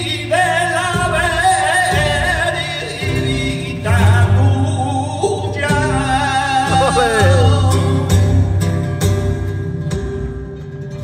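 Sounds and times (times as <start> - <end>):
flamenco singer singing: 0.0 - 10.1
flamenco guitar: 0.0 - 11.0.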